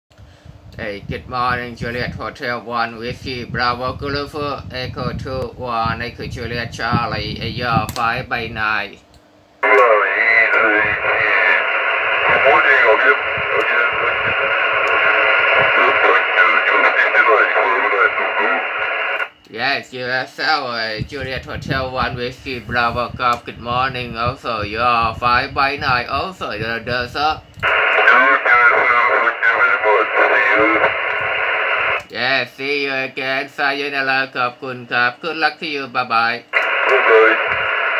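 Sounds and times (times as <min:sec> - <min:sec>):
steady radio hiss: 0:00.4 - 0:09.0, 0:09.6 - 0:37.9
narrow radio voice: 0:09.6 - 0:19.3, 0:21.0 - 0:32.2, 0:36.3 - 0:37.9.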